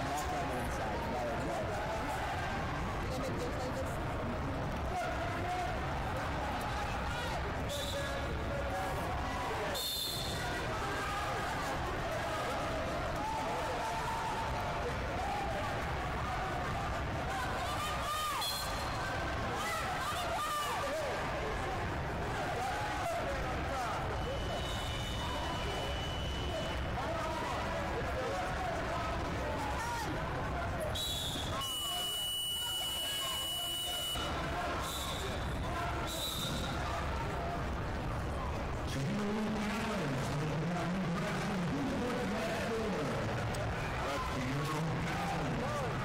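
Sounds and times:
chatter of many voices: 0.0s - 46.0s.

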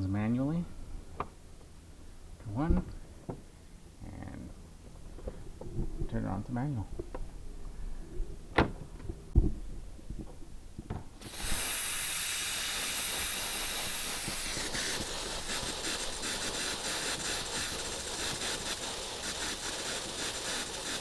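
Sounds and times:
compressed air hissing through sprinklers: 11.2s - 21.0s.

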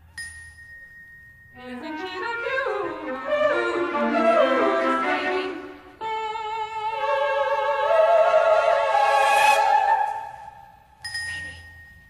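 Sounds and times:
opera music: 1.6s - 11.0s.

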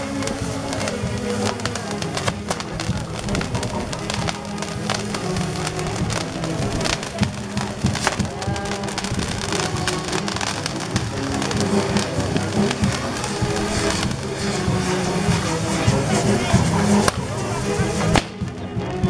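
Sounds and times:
fireworks crackling and popping: 0.0s - 19.0s
music: 0.0s - 19.0s.

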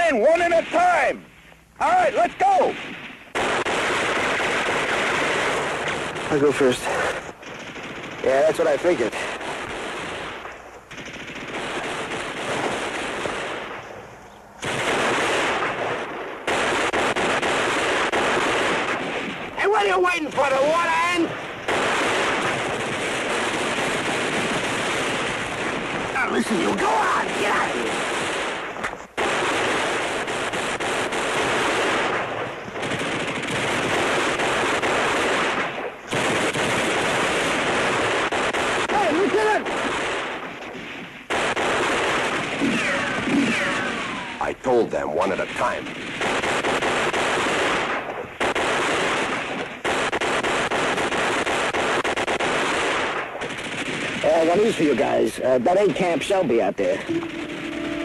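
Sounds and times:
machine-gun fire bursts: 2.7s - 13.9s, 14.6s - 44.4s, 45.2s - 55.2s, 56.9s - 58.0s.

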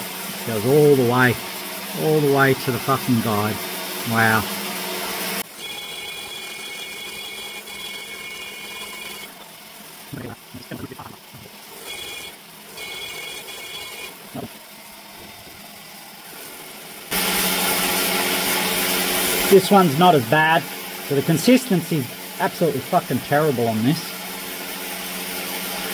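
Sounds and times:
die grinder whining: 0.0s - 25.9s.

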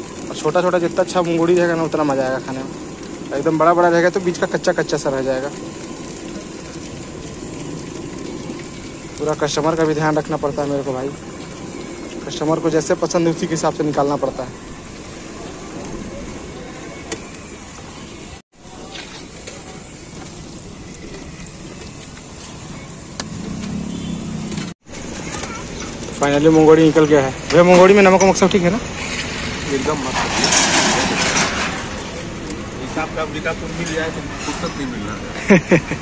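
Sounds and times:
hot oil sizzling: 0.0s - 36.0s
vehicle engine passing: 23.2s - 24.8s.

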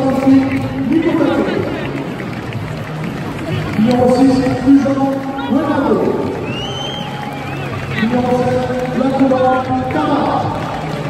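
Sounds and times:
announcer voice echoing: 0.0s - 2.1s, 3.4s - 6.5s, 7.8s - 11.0s
background music: 0.0s - 11.0s
low crowd murmur: 0.0s - 11.0s.

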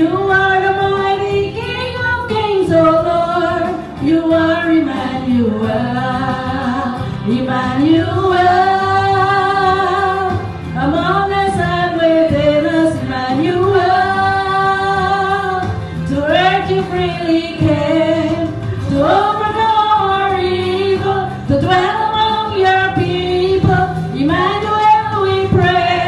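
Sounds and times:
keyboard accompaniment: 0.0s - 26.0s
women singing worship song: 0.0s - 26.0s.

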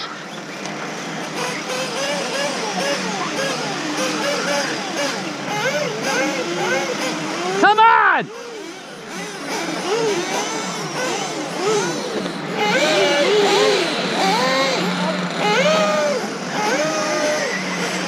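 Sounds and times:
electric rc car motors whining: 0.0s - 18.0s.

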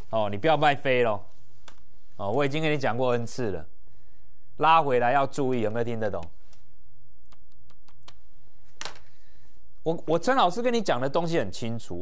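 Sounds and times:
faint steady hum: 0.0s - 11.8s.

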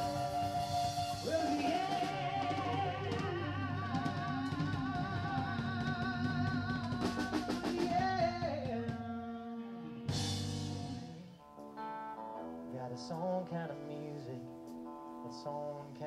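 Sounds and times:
wavering lead melody: 0.0s - 5.8s
drum kit: 0.0s - 9.3s, 10.1s - 11.8s
electric guitars: 0.0s - 16.0s.

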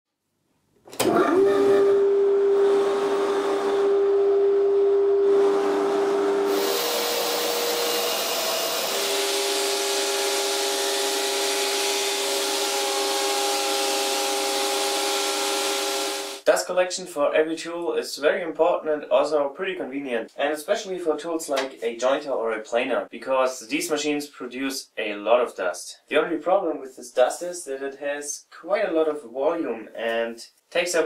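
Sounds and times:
dust collector running: 1.0s - 16.4s.

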